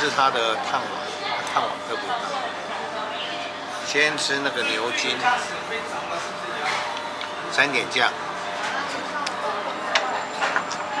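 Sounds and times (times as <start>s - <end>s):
murmur of diners' voices: 0.0s - 11.0s.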